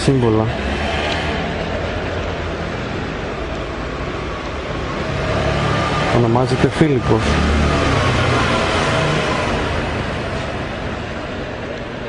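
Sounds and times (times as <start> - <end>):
city street traffic noise: 0.0 - 12.0.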